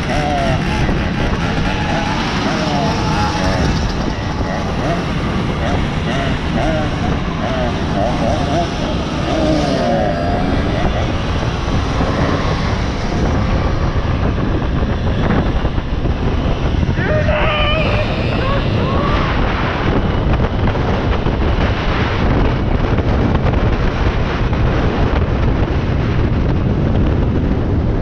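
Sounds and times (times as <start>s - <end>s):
two-stroke moped engines: 0.0s - 22.8s
wind rushing on microphone: 0.0s - 28.0s.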